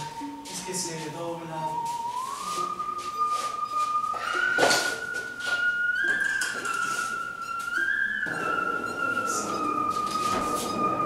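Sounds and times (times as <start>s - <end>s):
whistle-like tone melody: 1.6s - 11.0s.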